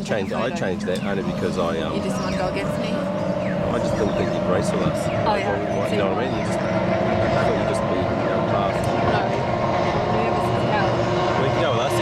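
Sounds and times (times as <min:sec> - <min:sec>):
racing powerboat engines droning: 0:00.0 - 0:12.0.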